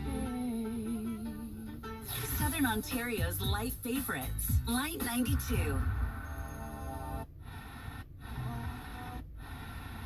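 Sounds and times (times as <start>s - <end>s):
faint radio programme audio: 2.0s - 10.0s.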